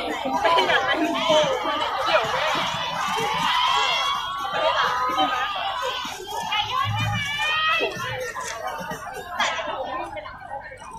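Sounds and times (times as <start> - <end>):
crowd chattering and calling out: 0.0 - 10.9.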